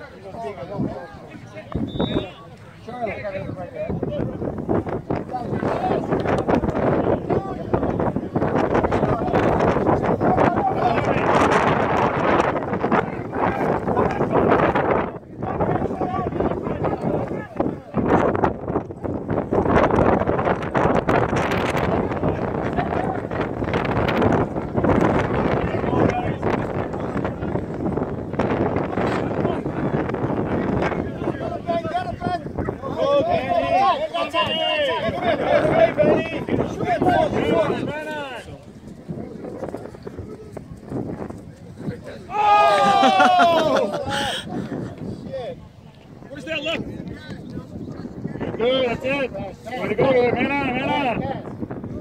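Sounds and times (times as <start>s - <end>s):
wind buffeting microphone: 0.0s - 52.0s
players shouting: 31.1s - 38.6s, 41.9s - 44.7s.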